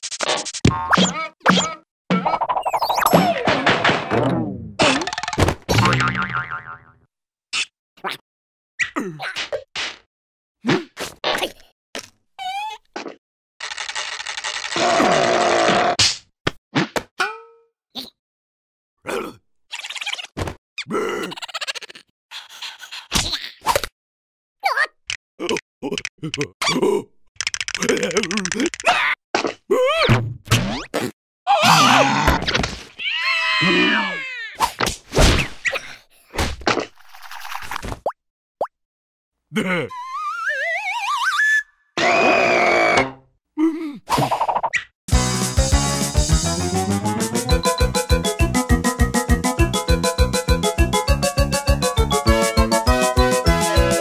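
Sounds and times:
cartoon thwacks and boings: 0.2s - 6.7s, 34.6s - 36.9s
cartoon character strained vocal noise: 31.5s - 32.4s, 33.0s - 34.6s, 39.5s - 40.6s
short vocal cry: 39.5s - 40.2s.

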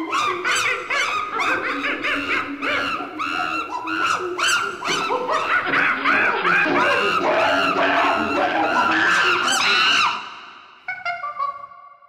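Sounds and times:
monkey chattering and screeching: 0.0s - 11.7s.

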